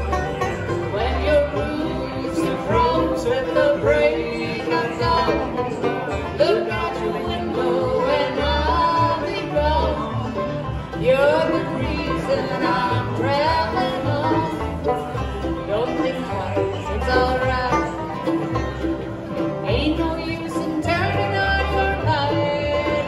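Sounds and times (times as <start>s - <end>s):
acoustic guitar picking: 0.0s - 23.0s
banjo: 0.0s - 23.0s
mandolin: 0.0s - 23.0s
upright bass: 0.0s - 23.0s.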